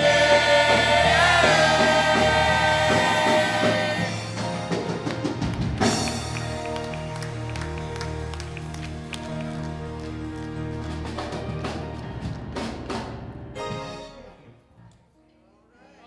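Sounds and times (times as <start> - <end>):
drum and cymbal hits: 0.0 - 6.8
held keyboard chords: 0.0 - 14.6.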